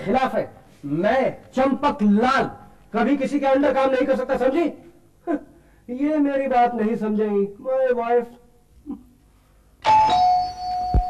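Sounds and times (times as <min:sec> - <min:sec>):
two-note doorbell chime: 0:09.8 - 0:11.0.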